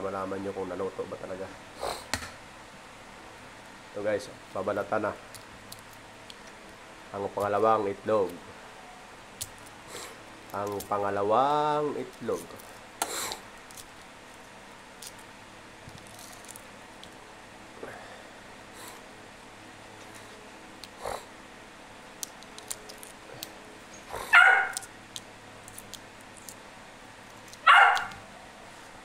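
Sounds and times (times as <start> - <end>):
steady low hum: 0.0 - 29.0
eggshell crackling being peeled: 4.6 - 8.4, 9.3 - 17.2, 20.7 - 21.0, 22.0 - 28.2
animal crying: 24.1 - 24.9, 27.6 - 28.2.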